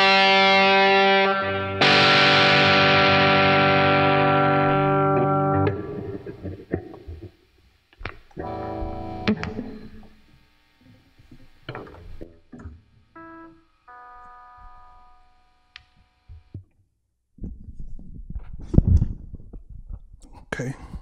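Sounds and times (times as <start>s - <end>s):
electric guitar chord: 0.0s - 7.2s, 8.4s - 16.5s.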